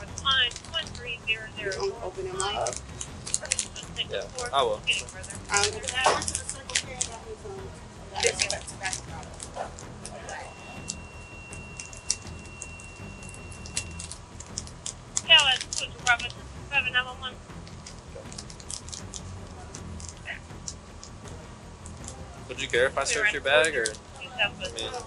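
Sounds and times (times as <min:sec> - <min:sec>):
faint high beep: 0:10.2 - 0:14.1.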